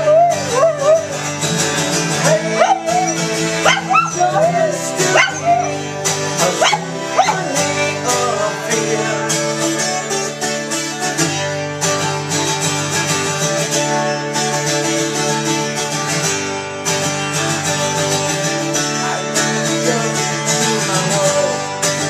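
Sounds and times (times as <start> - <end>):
acoustic guitar strumming: 0.0 - 22.0.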